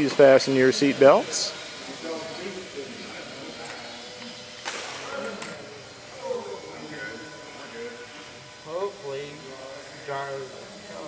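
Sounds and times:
people talking in a hall: 0:00.0 - 0:11.0.

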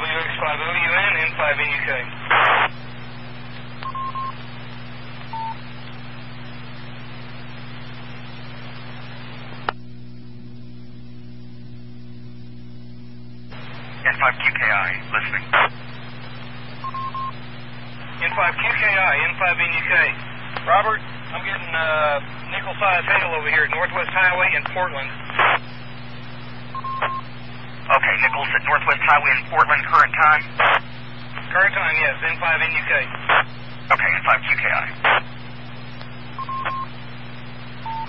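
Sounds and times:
tinny radio voice transmissions: 0:00.0 - 0:03.7, 0:13.5 - 0:17.1, 0:17.7 - 0:26.3, 0:27.0 - 0:35.7
steady hum: 0:00.0 - 0:38.0.

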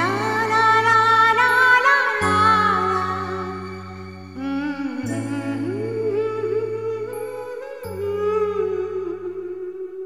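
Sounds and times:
long held low chords: 0:00.0 - 0:10.0.

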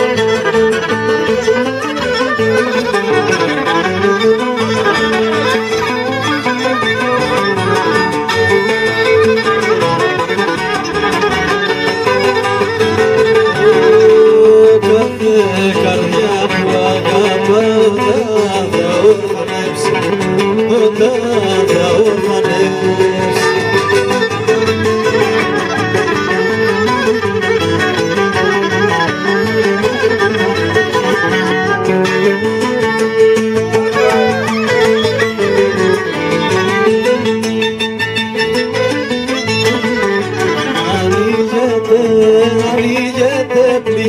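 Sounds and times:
strummed string accompaniment: 0:00.0 - 0:44.0
violin melody: 0:00.0 - 0:44.0.

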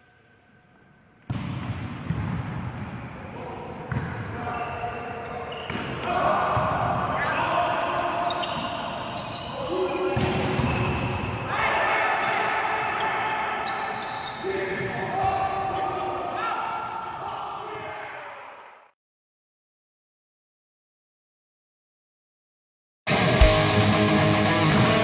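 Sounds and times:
players calling and shouting: 0:02.3 - 0:18.9.

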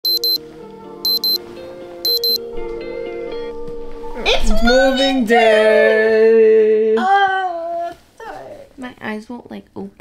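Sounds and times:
digital alarm clock beeping: 0:00.1 - 0:00.4, 0:01.1 - 0:01.4, 0:02.1 - 0:02.4
soft background music: 0:00.1 - 0:05.5.

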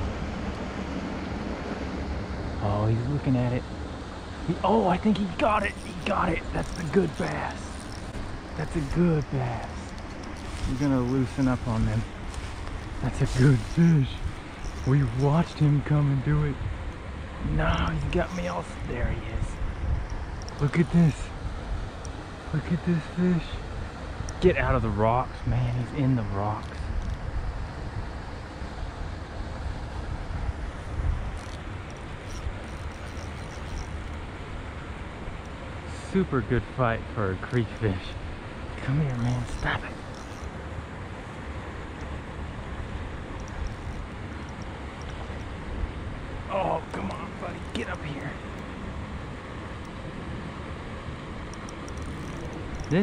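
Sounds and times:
wind rumbling on microphone: 0:00.0 - 0:35.9, 0:36.5 - 0:53.0
low outdoor background noise: 0:00.0 - 0:53.0
faint high ticks: 0:19.9 - 0:21.0, 0:24.2 - 0:24.4, 0:30.8 - 0:34.3, 0:38.9 - 0:40.6, 0:43.3 - 0:45.7, 0:51.4 - 0:53.0.

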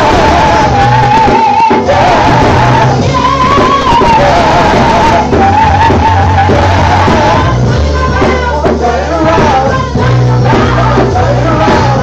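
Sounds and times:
instrumental backing with bass line: 0:00.0 - 0:12.0
women singing into microphones: 0:00.0 - 0:12.0.

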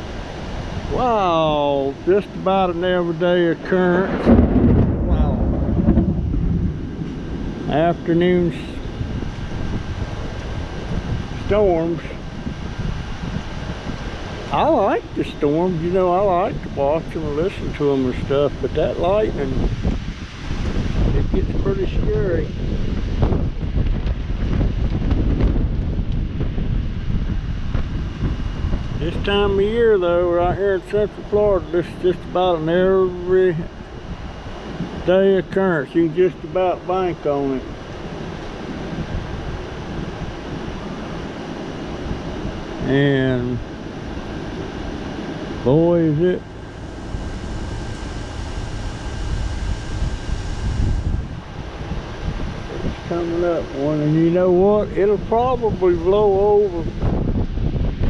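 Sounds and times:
air conditioner hum: 0:00.0 - 0:24.3, 0:26.3 - 0:57.9
distant thunder rumble: 0:00.0 - 0:56.1
gusty wind buffeting microphone: 0:00.0 - 0:58.0.

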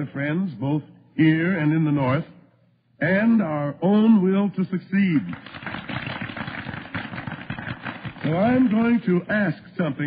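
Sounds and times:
crowd applauding: 0:05.3 - 0:09.1
person giving a speech: 0:08.2 - 0:10.0.

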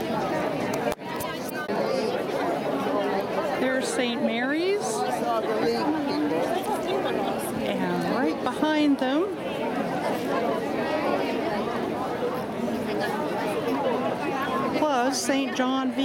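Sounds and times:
crowd chatter: 0:00.0 - 0:16.0.

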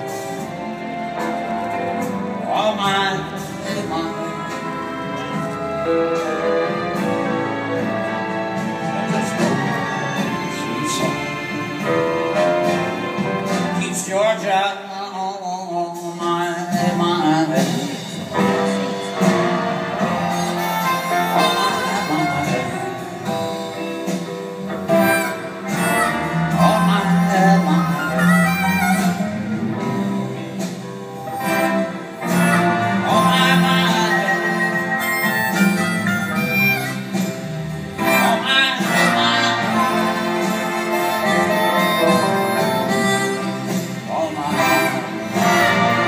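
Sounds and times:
distant band and orchestra ballad: 0:00.0 - 0:46.0.

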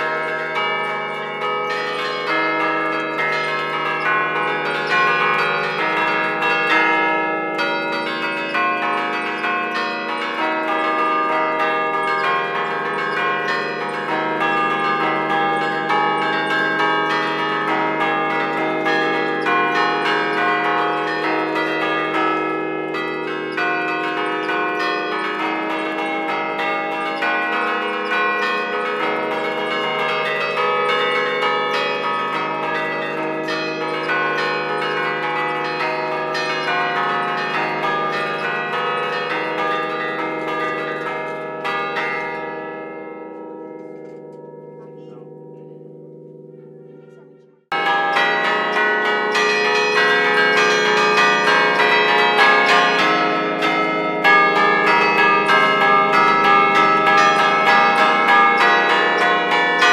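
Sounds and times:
church bells struck by hand: 0:00.0 - 0:59.9.

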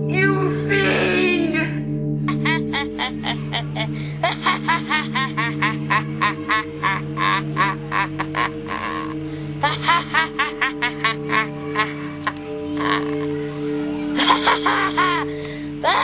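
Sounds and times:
background music drone: 0:00.0 - 0:16.0
boy laughing: 0:02.3 - 0:16.0.

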